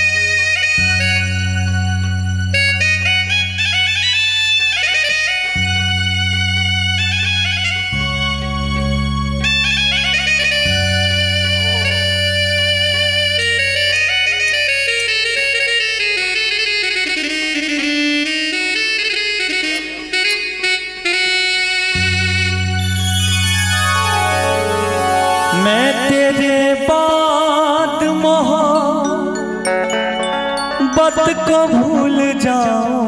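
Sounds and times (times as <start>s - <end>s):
sustained bass chords: 0.0s - 4.1s, 5.5s - 16.4s, 21.9s - 31.0s
reedy keyboard lead melody: 0.0s - 33.0s.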